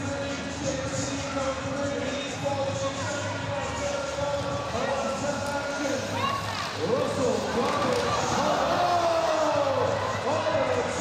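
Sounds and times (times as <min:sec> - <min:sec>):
echoing voices calling out: 0:02.9 - 0:11.0.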